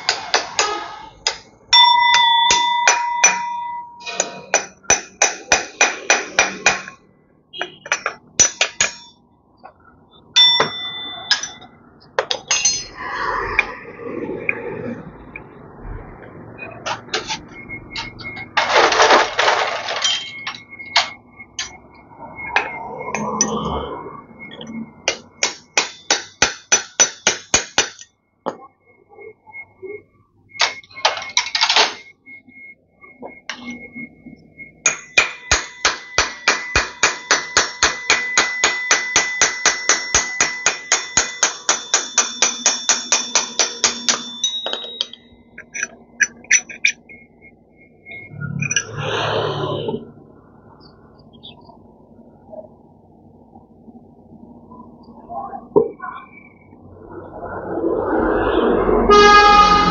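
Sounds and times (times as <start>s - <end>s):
hammer striking metal: 0.0s - 9.2s, 10.3s - 13.0s, 24.4s - 28.6s, 30.5s - 32.1s, 34.8s - 47.2s.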